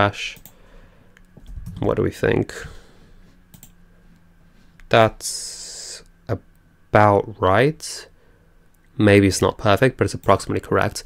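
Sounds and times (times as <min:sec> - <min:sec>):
man speaking: 0:00.0 - 0:00.4, 0:01.8 - 0:02.9, 0:04.9 - 0:08.1, 0:09.0 - 0:11.0
computer mouse click: 0:03.5 - 0:03.8.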